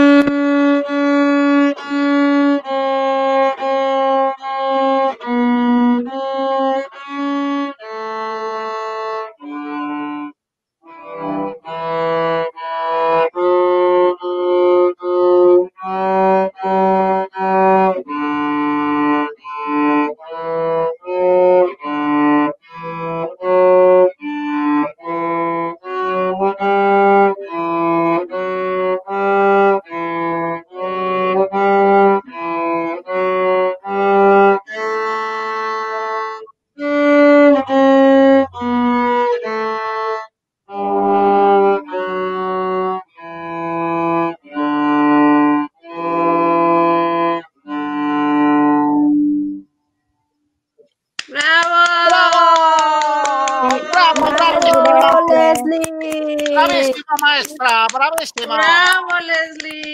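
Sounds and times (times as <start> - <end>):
cello bowed melody: 0.0 - 49.7, 53.2 - 59.9.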